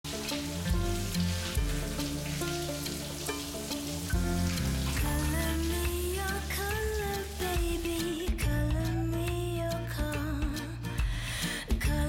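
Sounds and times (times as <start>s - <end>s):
shower water spraying: 0.0s - 8.4s
soundtrack music with held notes: 0.1s - 6.5s.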